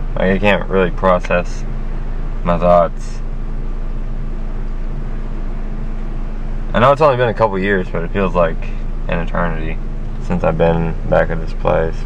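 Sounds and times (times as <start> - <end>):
car interior running noise: 0.0 - 12.0.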